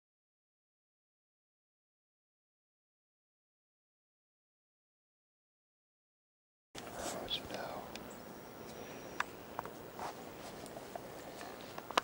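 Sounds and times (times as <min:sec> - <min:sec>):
low hiss: 0:06.8 - 0:12.0
person whispering: 0:06.9 - 0:08.0.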